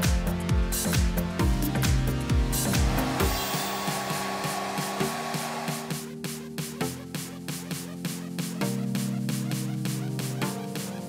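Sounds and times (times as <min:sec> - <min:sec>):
background music with bass line: 0:00.0 - 0:11.0
hot-air station hissing: 0:02.8 - 0:06.0.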